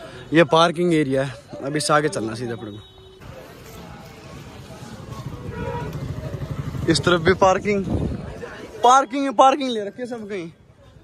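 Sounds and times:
faint voices: 0:00.0 - 0:11.0
vehicle engine rumbling: 0:03.2 - 0:08.6.

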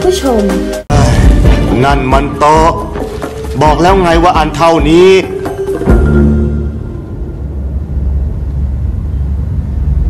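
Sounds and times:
deep low rumble: 0:05.9 - 0:10.0.

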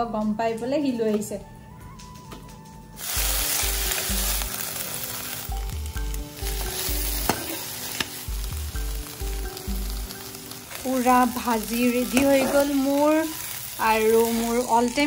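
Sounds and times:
vegetables sizzling in hot oil: 0:03.0 - 0:15.0.

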